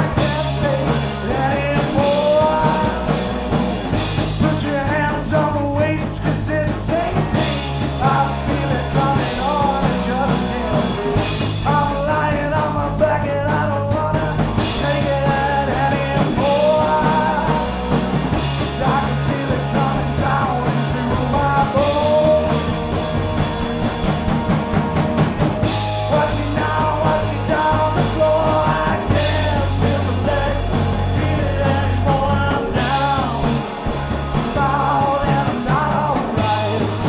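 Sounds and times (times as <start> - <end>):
man singing: 0.0 - 23.4, 25.6 - 37.0
bass guitar: 0.0 - 37.0
distorted electric guitar: 0.0 - 37.0
drums: 0.0 - 37.0.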